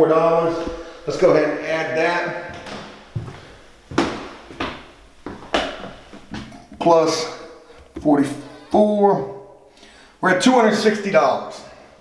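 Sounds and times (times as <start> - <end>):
footsteps on wooden floor: 0.4 - 1.3, 2.4 - 6.9, 7.7 - 8.4.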